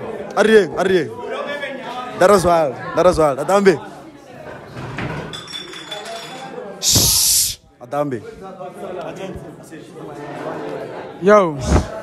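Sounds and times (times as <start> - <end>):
voices in a crowded room: 0.0 - 12.0
loud hiss: 6.8 - 7.7.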